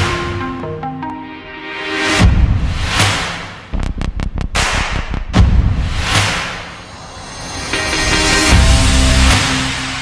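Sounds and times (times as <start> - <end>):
sharp cracks: 3.0 - 6.8
noisy swell: 3.7 - 10.0.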